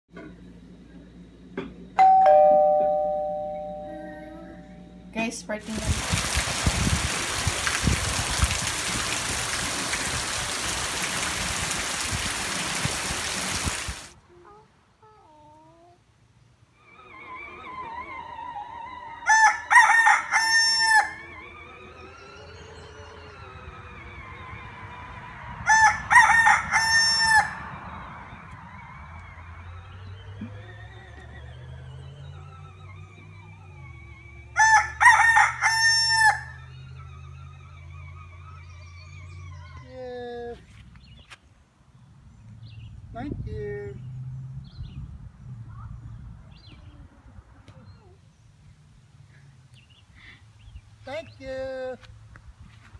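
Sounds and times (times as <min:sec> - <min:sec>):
heavy rain pouring: 0:05.6 - 0:14.2
rooster crowing: 0:16.9 - 0:29.8, 0:32.3 - 0:37.7.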